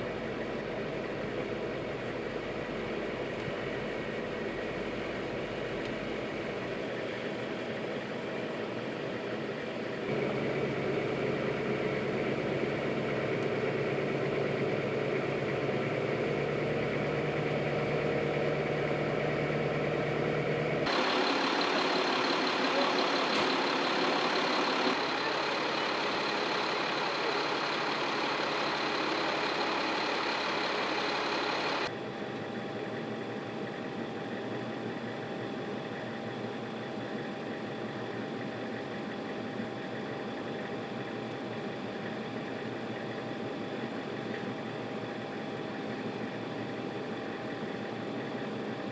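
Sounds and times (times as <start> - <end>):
diesel truck engines running: 0.0 - 48.9.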